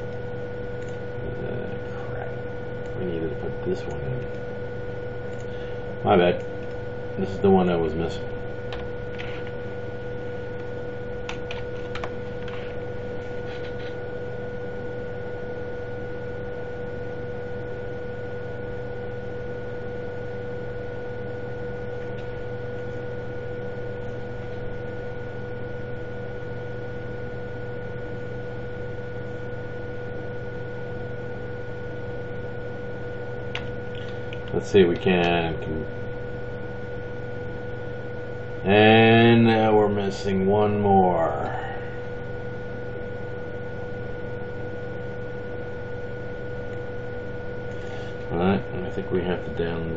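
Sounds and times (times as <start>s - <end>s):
electrical hum: 0.0s - 49.9s.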